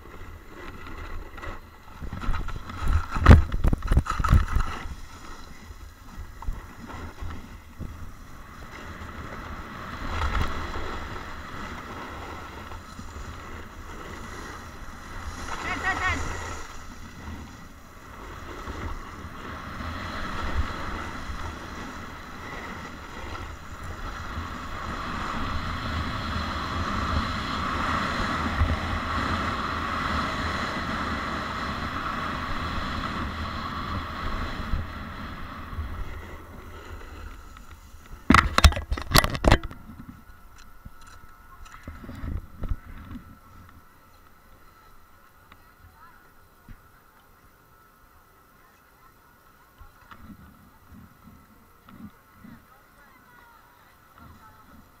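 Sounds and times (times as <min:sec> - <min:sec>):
wind on microphone: 0:00.0 - 0:43.9
snowboard scraping over snow: 0:00.0 - 0:47.0, 0:49.8 - 0:55.0.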